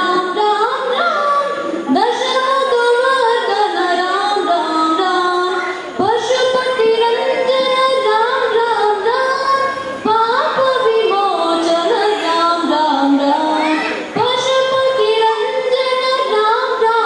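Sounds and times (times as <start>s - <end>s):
boy singing into microphone: 0.0s - 17.0s.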